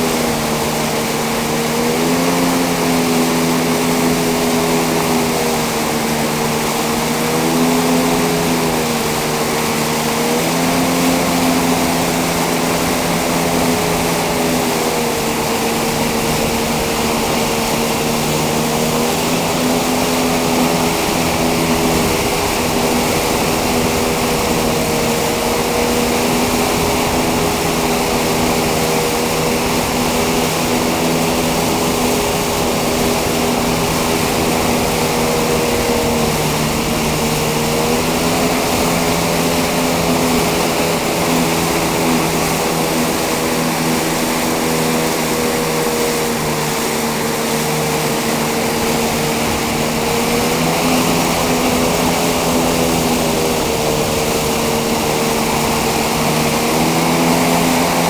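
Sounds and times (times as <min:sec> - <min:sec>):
boat engine running: 0:00.0 - 0:58.0.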